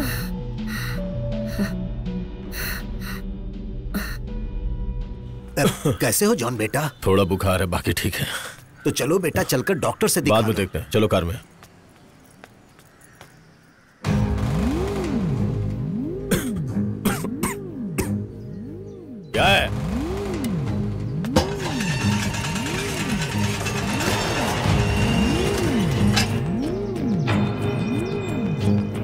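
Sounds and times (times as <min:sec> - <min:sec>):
low synth drone: 0:14.1 - 0:29.0.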